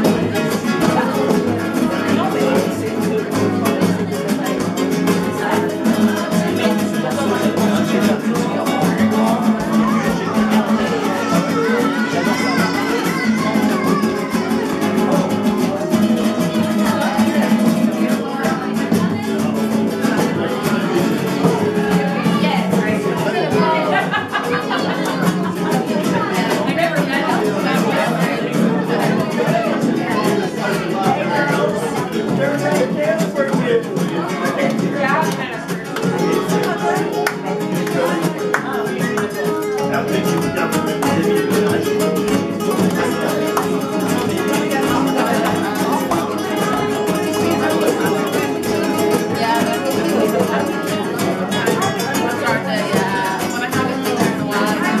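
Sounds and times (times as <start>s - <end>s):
acoustic guitars strumming: 0.0s - 55.0s
party voices: 0.0s - 55.0s
people singing: 0.0s - 55.0s
hand clapping: 31.7s - 55.0s.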